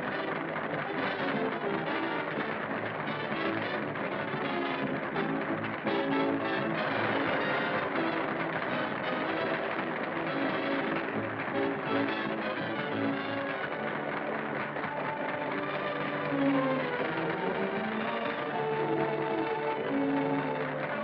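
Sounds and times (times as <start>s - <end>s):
muffled hula dance music: 0.0s - 21.0s.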